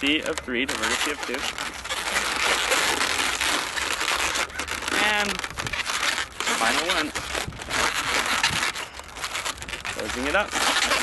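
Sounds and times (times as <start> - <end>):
balloons rubbing and crinkling: 0.0 - 11.0.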